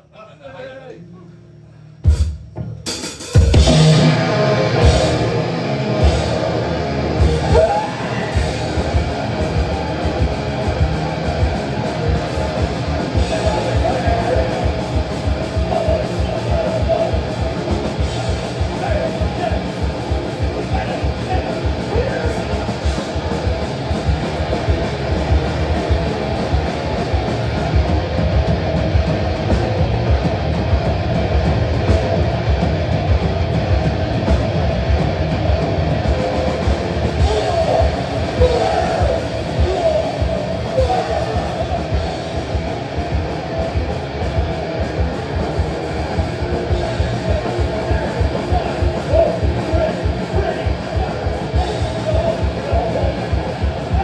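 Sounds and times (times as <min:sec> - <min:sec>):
bass guitar: 0:00.7 - 0:54.0
distorted electric guitars: 0:00.9 - 0:54.0
fast drumming: 0:02.1 - 0:54.0.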